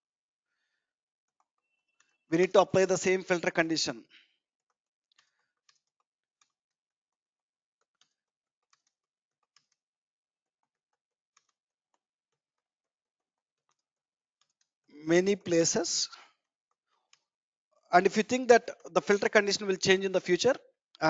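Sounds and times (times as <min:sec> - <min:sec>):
computer keyboard typing: 0:07.8 - 0:09.8.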